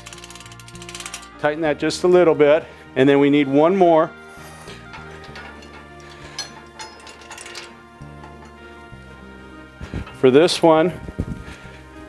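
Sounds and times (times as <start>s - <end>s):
metallic clicks of strap hooks: 0.0s - 1.3s, 4.6s - 8.6s
soft background music: 0.0s - 12.0s.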